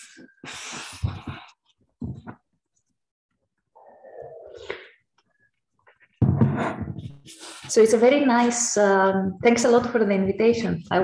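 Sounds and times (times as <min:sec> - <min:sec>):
person sniffling: 0:00.0 - 0:01.5
person blowing nose: 0:00.4 - 0:01.3.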